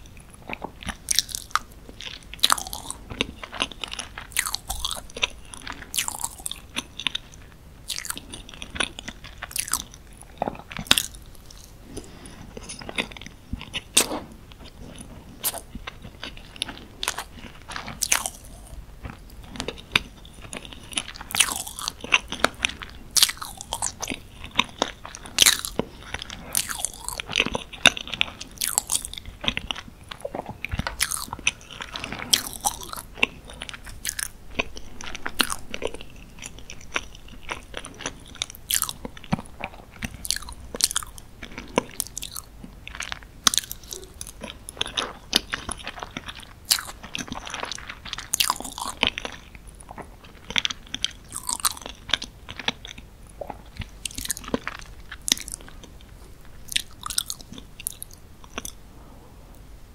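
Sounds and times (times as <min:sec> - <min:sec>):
person chewing cake: 0:00.0 - 0:58.8.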